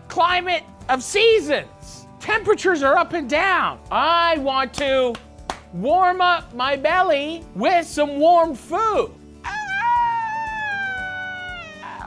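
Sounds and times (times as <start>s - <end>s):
wolf-like howl: 9.4s - 12.0s.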